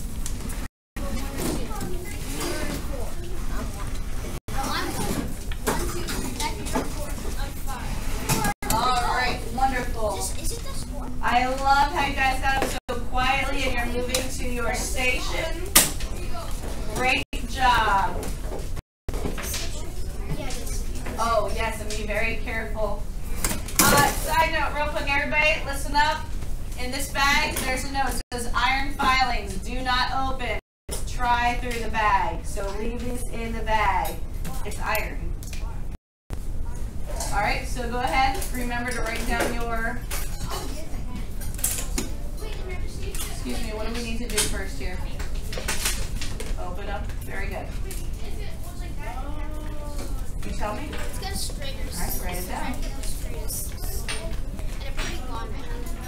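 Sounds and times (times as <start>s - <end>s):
children chattering: 1.0s - 12.4s, 14.8s - 17.0s, 19.5s - 21.2s, 40.4s - 43.9s, 47.7s - 56.0s.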